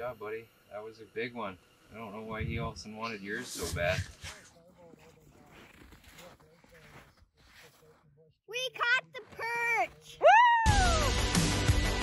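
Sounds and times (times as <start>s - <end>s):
child shrieking: 10.2s - 11.1s
music: 10.6s - 12.0s.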